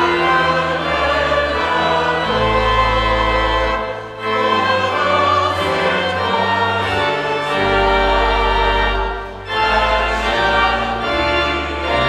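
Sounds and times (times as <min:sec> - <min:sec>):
choir singing a hymn: 0:00.0 - 0:12.0
low accompaniment: 0:00.0 - 0:12.0.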